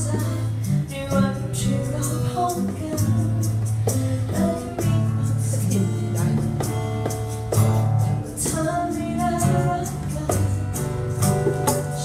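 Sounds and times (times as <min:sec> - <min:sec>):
strummed acoustic guitar: 0:00.0 - 0:12.0
woman singing into a microphone: 0:00.0 - 0:12.0
hand drums beating: 0:01.7 - 0:12.0.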